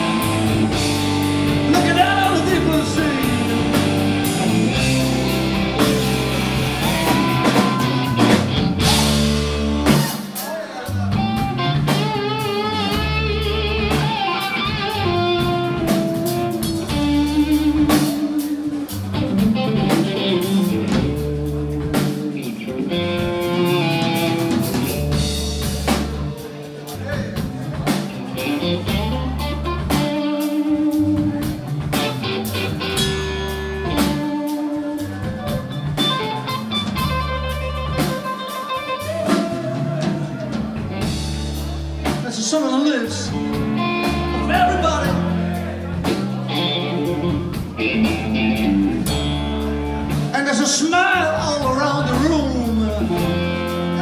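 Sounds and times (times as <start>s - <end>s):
electric guitar lead with vibrato: 0.0s - 42.2s, 42.9s - 54.0s
bass guitar: 0.0s - 54.0s
drum kit: 0.0s - 54.0s.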